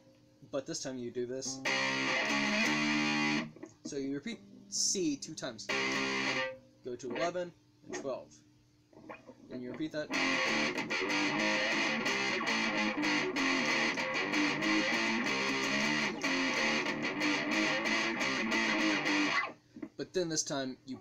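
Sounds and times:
distorted electric guitar riff: 1.5 - 3.7, 5.4 - 8.1, 9.1 - 19.6.

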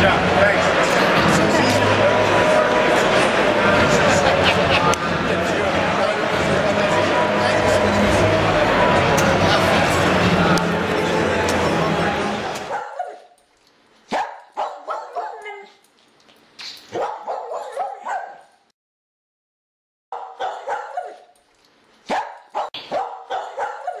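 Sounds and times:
crowd hall noise: 0.0 - 13.2
dog barking and yipping: 12.7 - 13.4, 14.1 - 15.8, 16.9 - 18.6, 20.1 - 21.4, 22.0 - 24.0.

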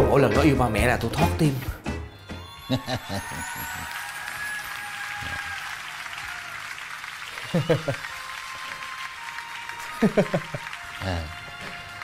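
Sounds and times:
canned audience laughter and applause: 2.4 - 12.0.

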